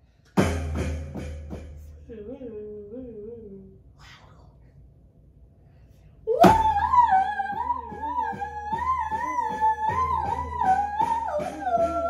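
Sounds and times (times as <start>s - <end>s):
heavy bass drum hits: 0.4s - 1.9s, 6.4s - 12.0s.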